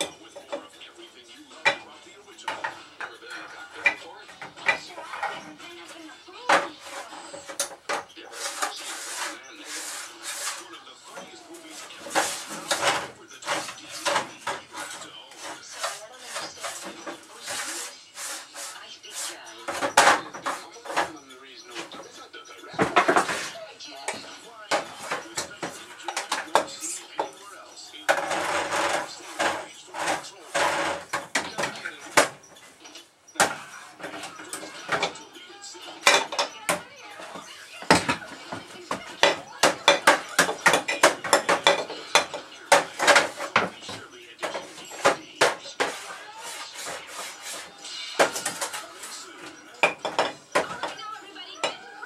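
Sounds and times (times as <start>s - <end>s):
tv music: 0.0s - 52.0s
tv voices: 0.0s - 52.0s.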